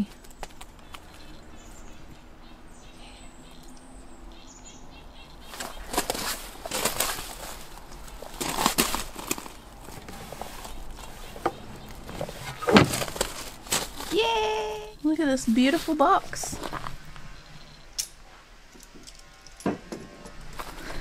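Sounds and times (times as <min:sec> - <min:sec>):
footsteps on gravel: 0:05.5 - 0:17.3.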